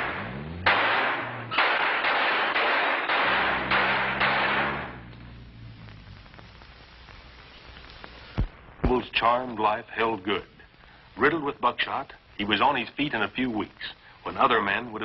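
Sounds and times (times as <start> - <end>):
loud gunshots: 0.0 - 5.1
car engine revving: 0.0 - 6.7.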